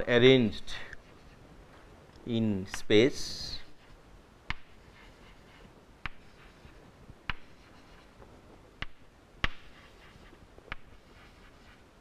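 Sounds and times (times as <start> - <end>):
chalk tapping on chalkboard: 4.5 - 8.1, 8.8 - 11.8.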